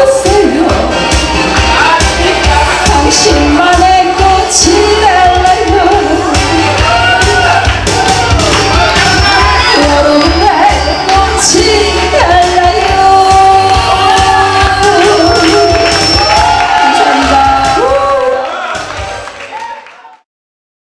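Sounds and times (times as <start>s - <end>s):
woman singing into a microphone: 0.0s - 1.0s, 1.7s - 6.8s, 9.5s - 16.2s, 16.8s - 18.4s
amplified backing track: 0.0s - 19.4s.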